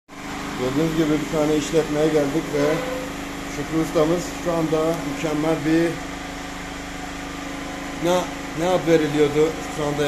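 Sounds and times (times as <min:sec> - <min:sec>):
machine humming: 0:00.1 - 0:10.0.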